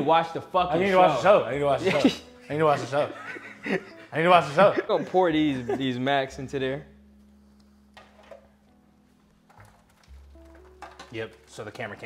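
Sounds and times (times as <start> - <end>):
quiet music with low bass tones: 0.0 - 12.0.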